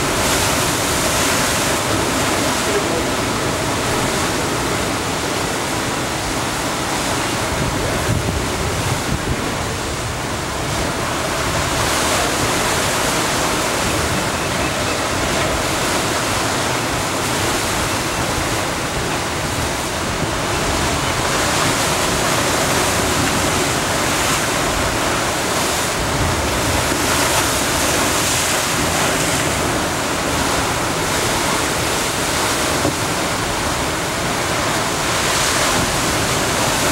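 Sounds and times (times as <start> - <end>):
ocean surf breaking over rocks: 0.0 - 36.9.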